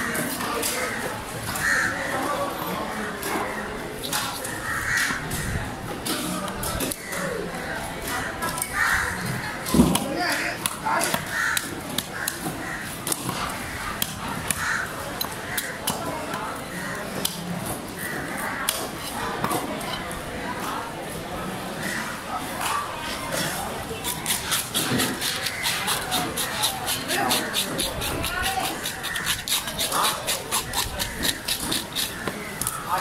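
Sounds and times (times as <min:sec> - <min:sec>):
crows cawing: 0:00.9 - 0:02.1, 0:04.6 - 0:05.4, 0:11.1 - 0:13.0, 0:13.6 - 0:15.8
knife scraping fish: 0:23.4 - 0:32.8.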